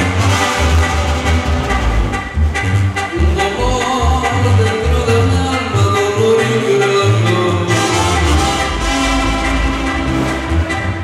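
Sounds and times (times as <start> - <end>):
live band dance music: 0.0 - 11.0.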